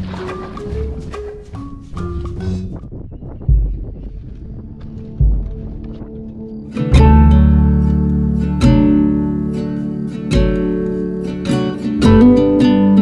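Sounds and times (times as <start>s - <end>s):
acoustic guitar chords and notes: 6.7s - 13.0s.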